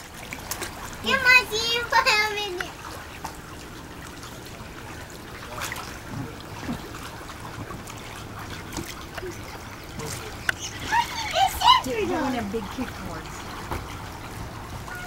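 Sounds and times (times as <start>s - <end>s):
pool water lapping and splashing: 0.0s - 15.0s.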